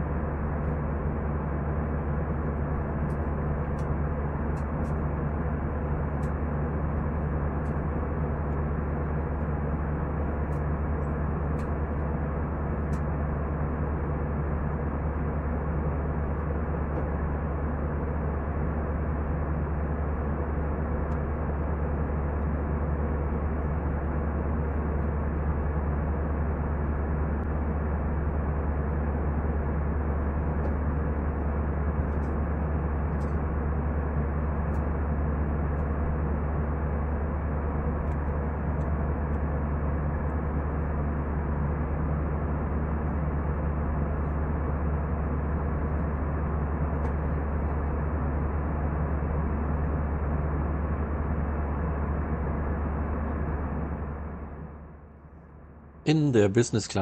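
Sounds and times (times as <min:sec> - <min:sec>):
airplane cabin engine drone: 0:00.0 - 0:57.0.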